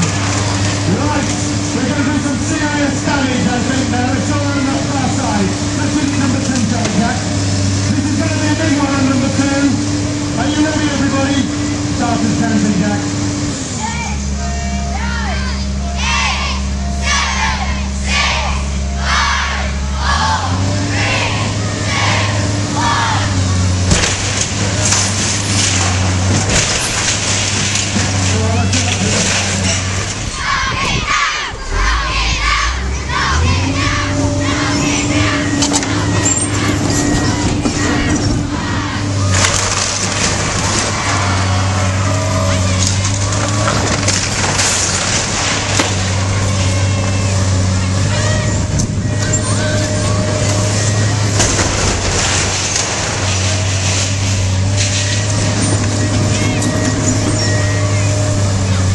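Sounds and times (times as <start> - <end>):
excavator engine running: 0.0 - 58.9
splintering timber crunches: 21.9 - 30.5, 31.1 - 58.9
metal sheeting clattering: 23.6 - 30.4, 39.2 - 58.5.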